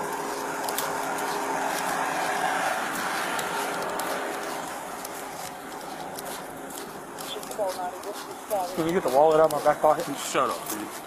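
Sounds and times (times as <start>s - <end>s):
steady rushing noise: 0.0s - 11.0s
vehicles idling hum: 0.0s - 11.0s.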